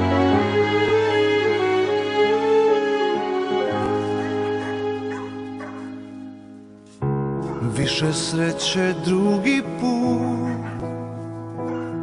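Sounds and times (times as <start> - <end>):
slow ballad chord: 0.0 - 12.0
dogs yipping and barking: 3.7 - 6.2, 7.4 - 7.7, 10.4 - 11.0, 11.6 - 12.0.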